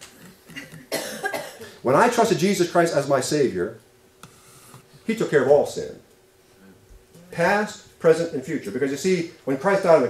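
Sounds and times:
person coughing: 0.5s - 1.8s.

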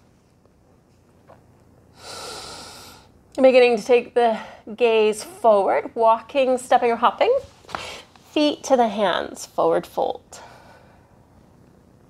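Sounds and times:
woman breathing: 1.9s - 3.2s, 7.7s - 8.2s, 10.3s - 11.2s.

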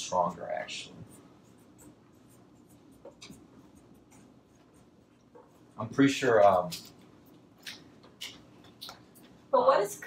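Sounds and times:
marker scratching on whiteboard: 0.0s - 7.4s.

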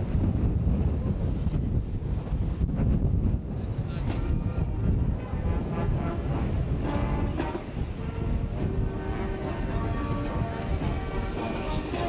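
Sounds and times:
wind on microphone: 0.0s - 12.0s
faint voices: 3.4s - 12.0s.

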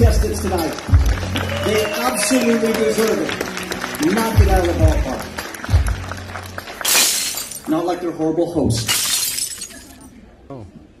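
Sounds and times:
glass shattering: 6.8s - 7.8s, 8.7s - 10.1s.

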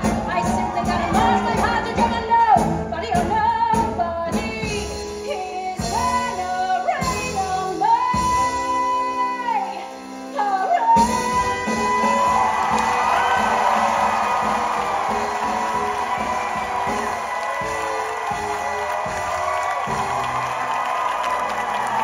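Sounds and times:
audience cheering and whooping: 0.0s - 1.9s, 11.2s - 22.0s
live band holding chords: 0.0s - 22.0s.

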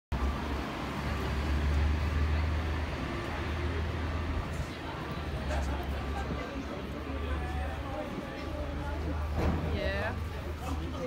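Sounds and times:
outdoor street noise: 0.1s - 11.0s.

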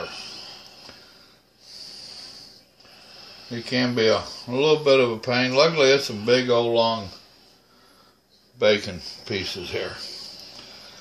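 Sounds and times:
soft breath hiss: 0.0s - 11.0s.

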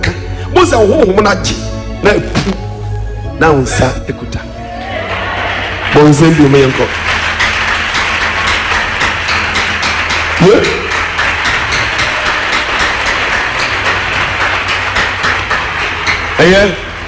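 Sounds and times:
congregation applauding: 4.6s - 17.0s.

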